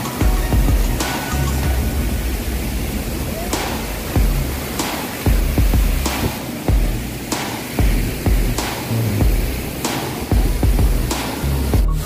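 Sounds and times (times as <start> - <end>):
waterfall pounding onto rock: 0.0 - 12.0.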